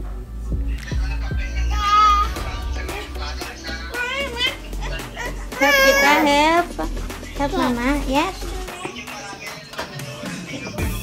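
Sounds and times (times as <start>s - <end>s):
toddler sing-song voice: 1.6s - 6.4s.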